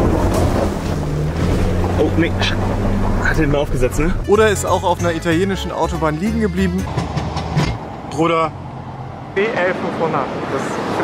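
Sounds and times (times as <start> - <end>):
car driving over rough ground: 0.0 - 4.4
low engine drone: 0.0 - 4.9.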